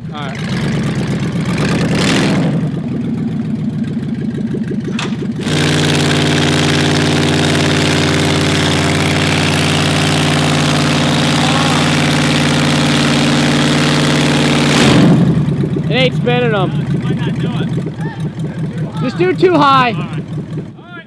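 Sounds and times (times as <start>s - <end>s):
pickup engine with pulsing exhaust: 0.0s - 21.0s
steady engine tone: 0.0s - 21.0s.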